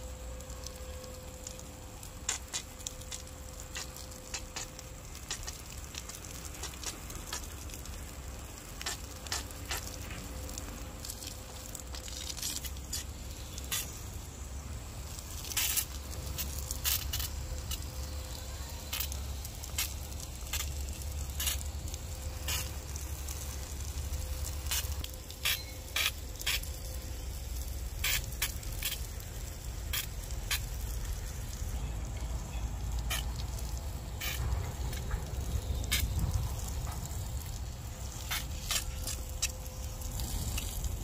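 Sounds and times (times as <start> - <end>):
hose water spraying on plants: 0.0 - 41.0
low rumble: 30.8 - 41.0.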